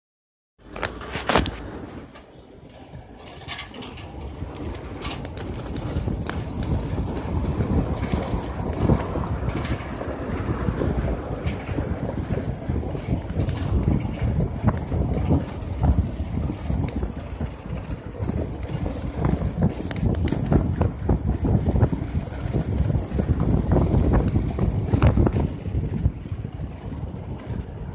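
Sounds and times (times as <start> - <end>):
wind buffeting microphone: 0.6 - 27.9.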